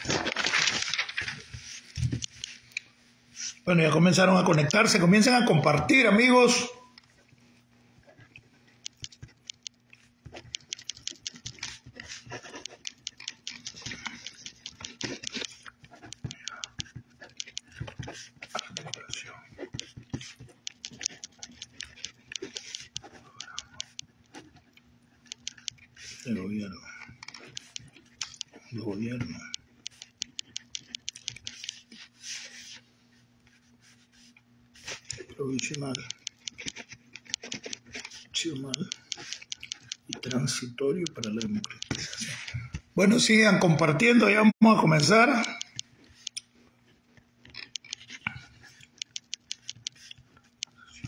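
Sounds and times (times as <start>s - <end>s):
faint steady hum: 0.0s - 51.0s
fingers tapping on touchscreen: 8.8s - 25.9s, 27.2s - 28.6s, 29.2s - 32.0s, 34.9s - 42.3s, 47.4s - 51.0s.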